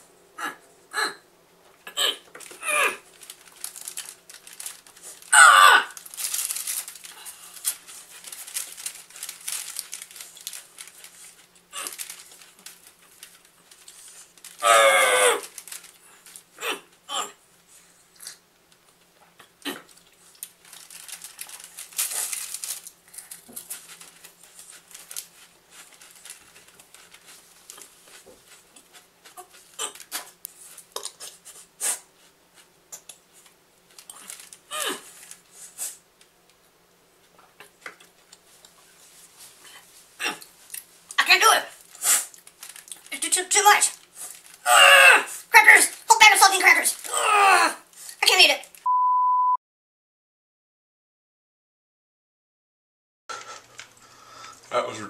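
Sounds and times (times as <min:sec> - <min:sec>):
chewing dry crackers: 0:02.2 - 0:16.6, 0:18.1 - 0:31.7, 0:32.6 - 0:36.0, 0:39.4 - 0:48.8
cracker wrapper crinkling: 0:02.2 - 0:16.6, 0:18.2 - 0:31.7, 0:32.6 - 0:36.0, 0:40.4 - 0:48.9.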